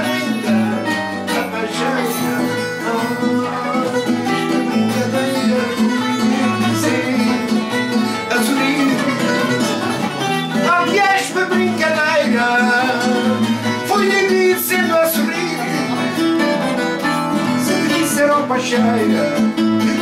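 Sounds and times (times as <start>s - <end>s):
classical guitar: 0.0s - 20.0s
man singing: 0.0s - 20.0s
portuguese guitar: 0.0s - 20.0s.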